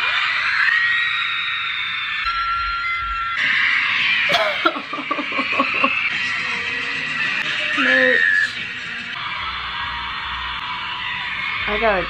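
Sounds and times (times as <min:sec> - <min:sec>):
crowd screaming over phone speaker: 0:00.0 - 0:12.0
concert music over phone speaker: 0:02.3 - 0:12.0
woman laughing: 0:04.3 - 0:06.1.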